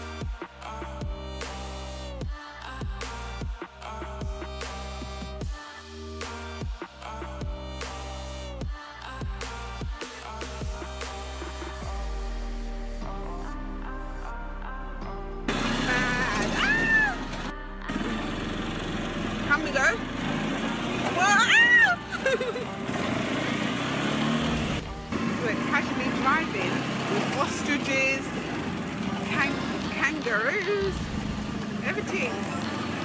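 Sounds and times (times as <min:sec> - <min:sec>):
electronic music: 0:00.0 - 0:18.8, 0:24.5 - 0:26.5
quad bike engine running: 0:15.5 - 0:33.0.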